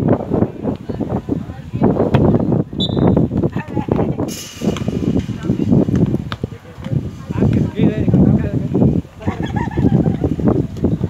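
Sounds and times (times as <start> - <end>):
people talking and calling out: 0.0 - 11.0
hiss: 4.3 - 5.5.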